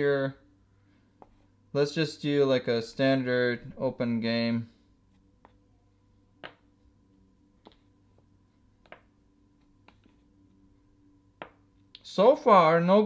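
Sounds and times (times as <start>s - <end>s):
chess pieces tapping on board: 6.4s - 6.7s, 8.8s - 9.1s.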